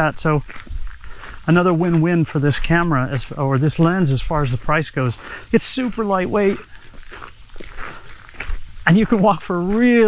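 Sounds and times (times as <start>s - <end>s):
man speaking: 0.0s - 0.5s, 1.3s - 6.8s, 8.8s - 10.0s
faint footsteps: 0.0s - 10.0s.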